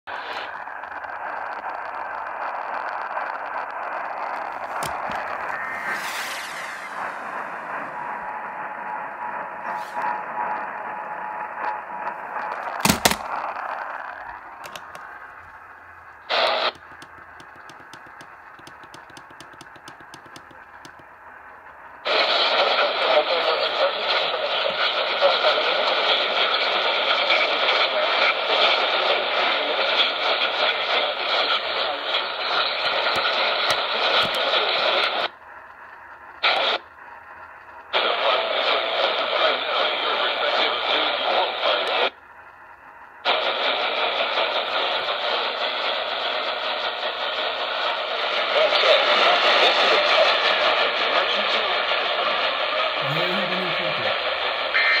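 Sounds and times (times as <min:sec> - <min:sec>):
loud radio static: 0:00.1 - 0:10.8, 0:11.4 - 0:21.0, 0:22.0 - 0:35.4, 0:36.4 - 0:36.9, 0:37.9 - 0:42.2, 0:43.2 - 0:55.0
rapid faint clicks: 0:16.6 - 0:21.1.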